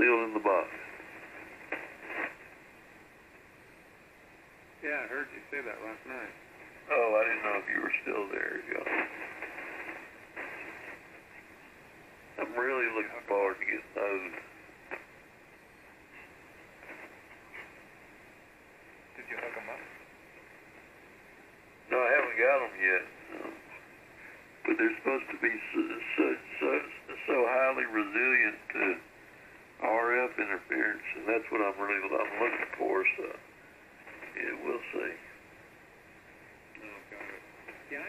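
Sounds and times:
radio voice: 0:00.0 - 0:01.0, 0:06.9 - 0:09.6, 0:12.4 - 0:14.5, 0:19.2 - 0:20.0, 0:21.9 - 0:23.8, 0:24.7 - 0:29.0, 0:29.8 - 0:33.4, 0:34.2 - 0:35.3, 0:36.8 - 0:37.4
radio static hiss: 0:00.0 - 0:38.0.

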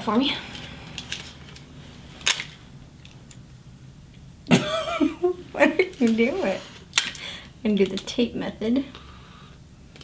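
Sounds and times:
person laughing: 0:04.5 - 0:06.0.

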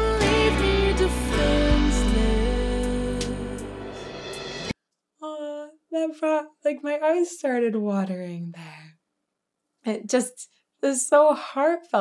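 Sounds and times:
woman speaking: 0:05.2 - 0:09.0, 0:09.9 - 0:12.0.

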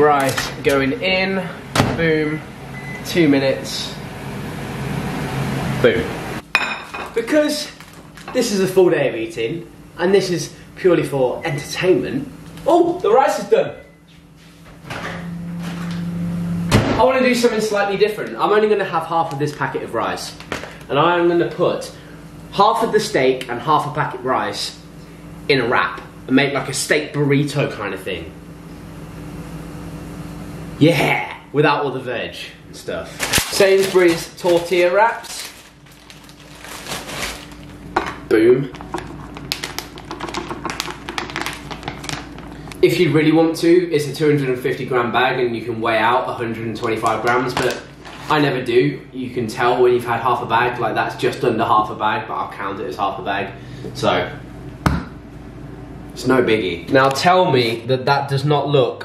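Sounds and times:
microwave humming: 0:00.0 - 0:59.0
plastic pouch crinkling: 0:07.6 - 0:08.4, 0:33.1 - 0:37.9, 0:38.7 - 0:42.8, 0:47.6 - 0:48.3.

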